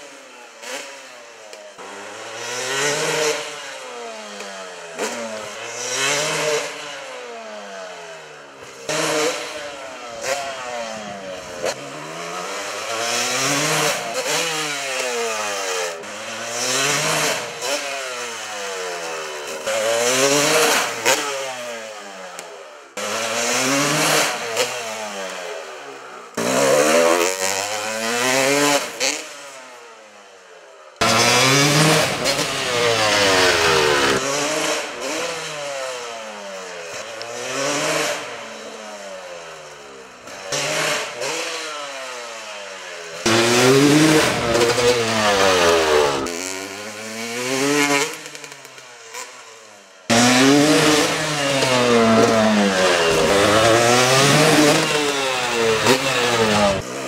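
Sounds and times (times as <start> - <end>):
dirt bike engine revving: 0.1 - 29.7, 31.0 - 57.0.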